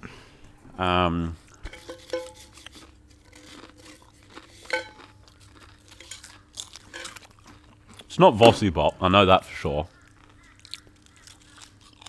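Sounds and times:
person chewing crunchy snack: 1.4 - 8.2, 9.9 - 12.0.

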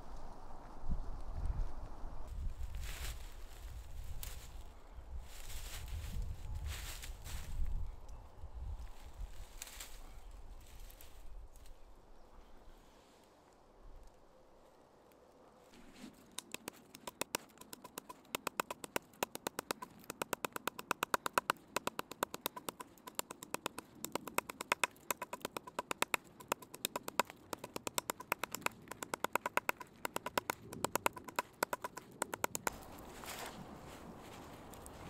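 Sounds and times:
stick tapping stems on log: 16.0 - 33.6.

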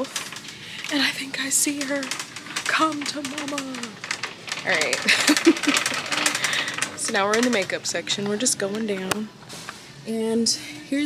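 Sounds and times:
shopping cart rattling: 0.0 - 10.4
person laughing: 5.0 - 6.4.

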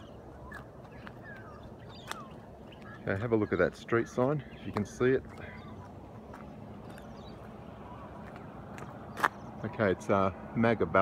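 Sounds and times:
footsteps on road: 0.0 - 10.6.

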